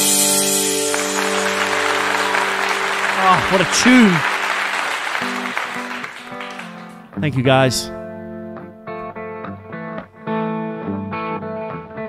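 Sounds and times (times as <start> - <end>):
crowd applause and cheering: 0.0 - 7.2
electric guitar chord ringing: 0.0 - 7.2.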